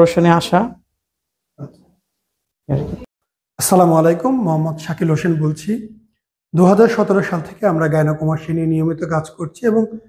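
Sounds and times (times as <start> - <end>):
man's voice fragments: 3.6 - 10.0.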